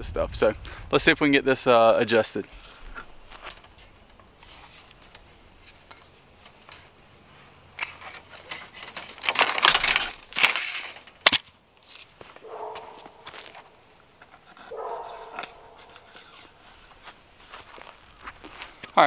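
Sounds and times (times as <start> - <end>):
dog barking: 12.4 - 13.3, 14.7 - 16.1
wire rasping through wood: 14.3 - 17.0.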